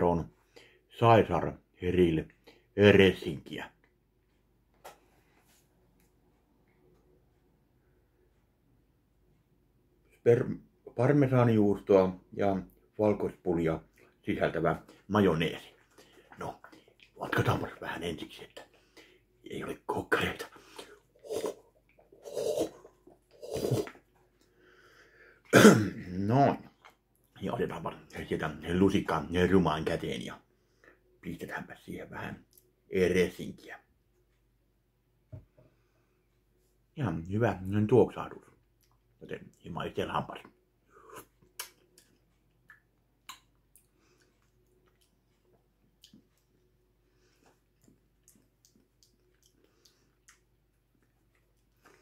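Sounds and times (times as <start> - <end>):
man coughing: 25.5 - 26.2
wet mouth clicks and lip smacks: 41.1 - 46.6, 47.7 - 52.0.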